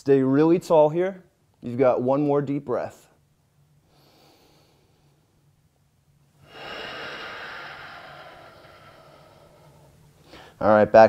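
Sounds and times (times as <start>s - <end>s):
man breathing out deeply: 3.8s - 5.3s, 6.4s - 10.6s.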